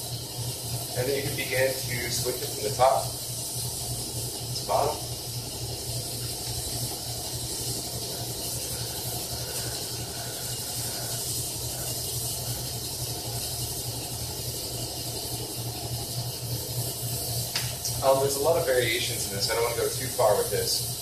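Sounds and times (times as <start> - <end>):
fish tank equipment hiss: 0.0 - 21.0
refrigerators humming: 0.0 - 21.0.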